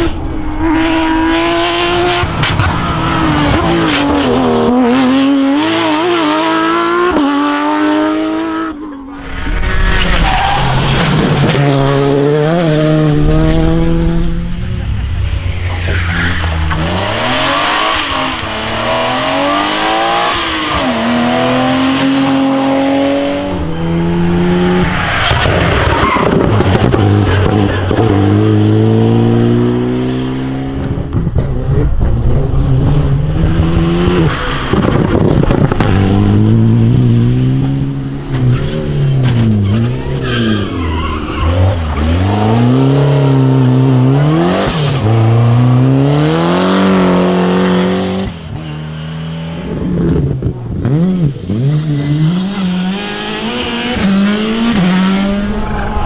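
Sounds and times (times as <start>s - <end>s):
rally cars passing at full throttle: 0.0s - 56.0s.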